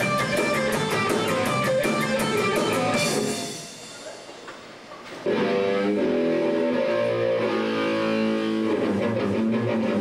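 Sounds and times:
live rock band: 0.0 - 4.3, 5.2 - 10.0
electric guitar ringing out: 5.3 - 10.0.

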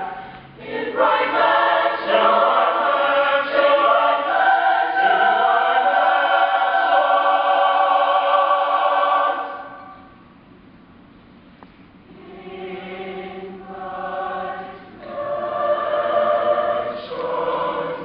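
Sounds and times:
a cappella choir singing: 0.0 - 10.0, 12.1 - 18.0.

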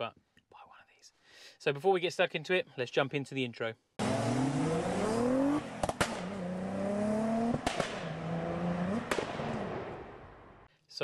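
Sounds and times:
sharp exhaust cracks: 4.0 - 10.6
car engine accelerating: 4.0 - 10.7.

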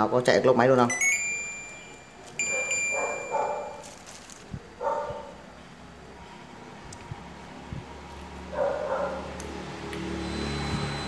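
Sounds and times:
air conditioner beeping: 0.7 - 5.2, 10.0 - 11.0.

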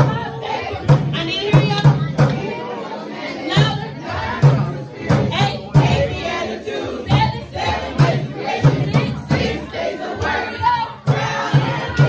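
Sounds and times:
group singing over music: 0.0 - 12.0.

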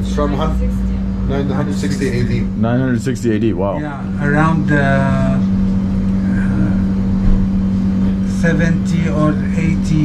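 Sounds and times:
steady low machine hum: 0.0 - 10.0.

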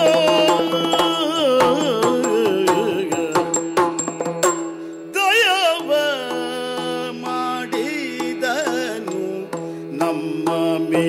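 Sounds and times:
person singing gliding melody: 0.0 - 3.6, 5.2 - 11.0.

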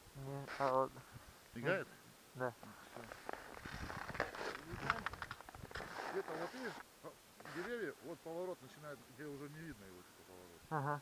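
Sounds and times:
skis crunching on packed snow: 2.9 - 6.8, 7.4 - 7.9.

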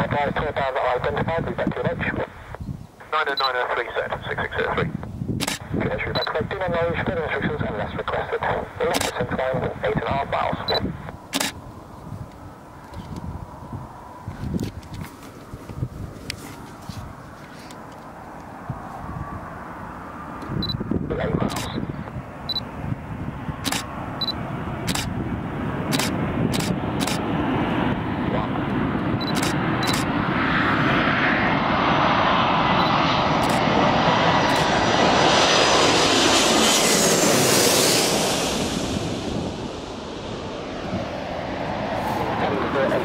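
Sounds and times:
high jet engine whine: 0.0 - 43.0
jet airliner passing overhead: 0.0 - 43.0.

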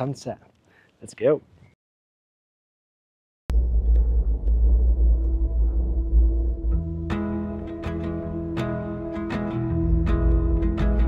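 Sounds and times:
gondola cabin rumble: 3.5 - 11.0.

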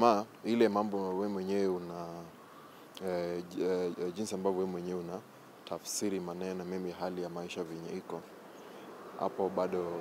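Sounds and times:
man talking: 0.0 - 2.4, 3.0 - 8.3, 9.1 - 10.0.

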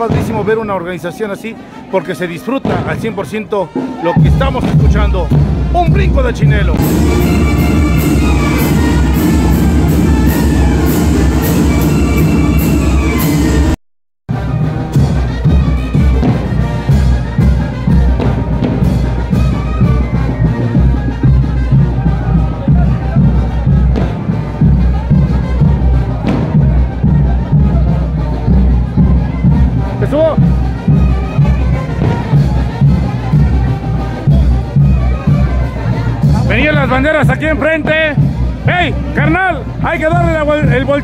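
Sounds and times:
brass band playing dance music: 0.0 - 41.0
faint street crowd: 0.0 - 41.0.

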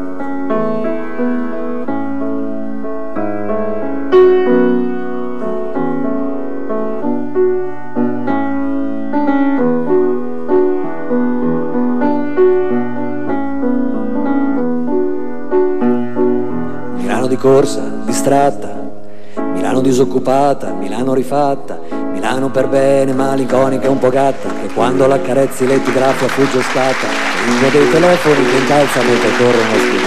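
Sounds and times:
grand piano playing: 0.0 - 30.0.

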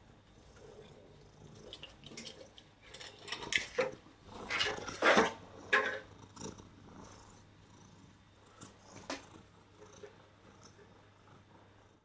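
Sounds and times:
cat purring: 0.0 - 2.5, 3.1 - 12.0.

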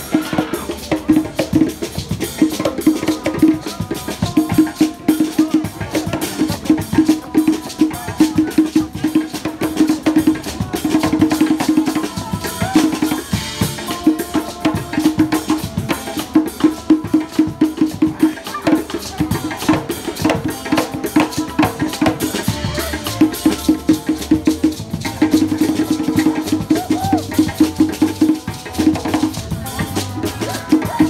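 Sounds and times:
live band playing groove: 0.0 - 31.0.

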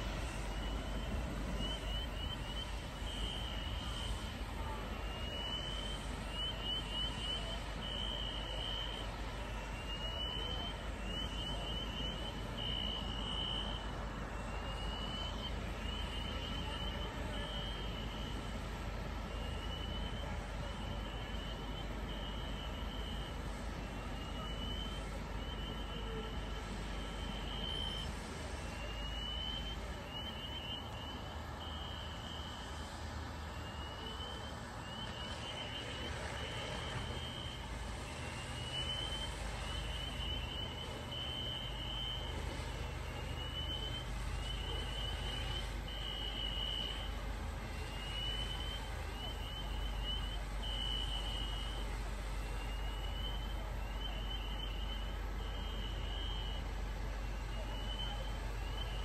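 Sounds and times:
fire engines rumbling: 0.0 - 59.0.

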